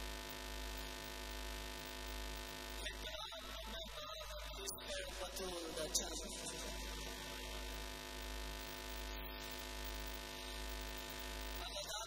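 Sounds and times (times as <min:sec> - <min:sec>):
electrical hum from speakers: 0:00.0 - 0:12.0.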